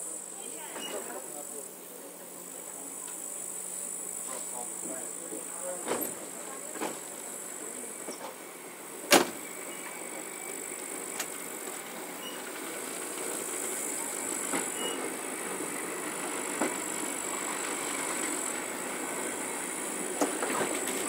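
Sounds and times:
train rumbling: 2.4s - 21.0s
loud train clank: 5.8s - 7.2s, 9.0s - 21.0s.

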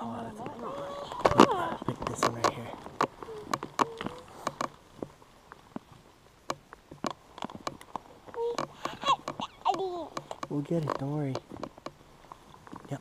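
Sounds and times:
faint voices: 0.0s - 4.6s
dry twigs snapping and clicking: 1.2s - 12.8s.

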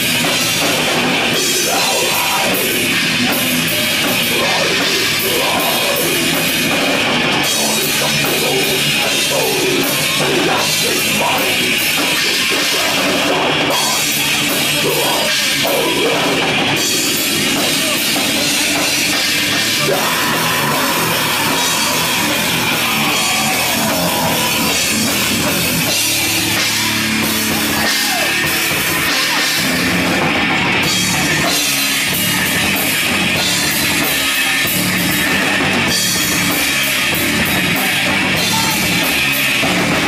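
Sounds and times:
distorted electric guitars: 0.0s - 40.0s
drum kit with cymbals: 0.0s - 40.0s.

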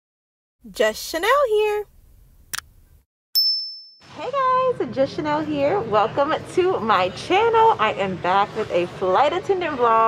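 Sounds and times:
bright bell ding: 3.4s - 4.0s.

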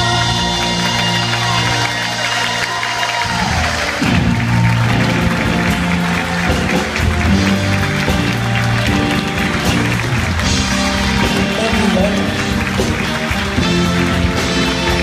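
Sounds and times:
sustained bass notes: 0.0s - 2.5s, 3.4s - 15.0s
audience applauding: 0.0s - 15.0s
brass section: 0.0s - 15.0s
drums: 0.0s - 15.0s
electric guitar: 0.0s - 15.0s.

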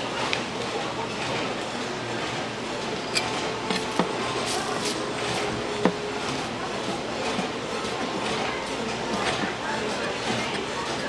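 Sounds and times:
busy market background noise: 0.0s - 11.0s.

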